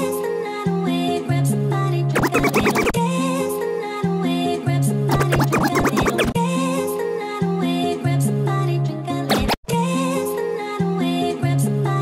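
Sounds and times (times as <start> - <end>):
music track with bass: 1.3 - 3.1, 4.7 - 6.5
rapid record scratching: 2.2 - 3.0, 5.1 - 6.4, 9.3 - 9.7.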